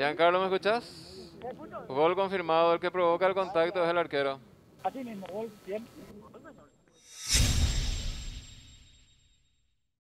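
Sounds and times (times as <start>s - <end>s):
whoosh and boom sound effect: 7.1s - 9.3s.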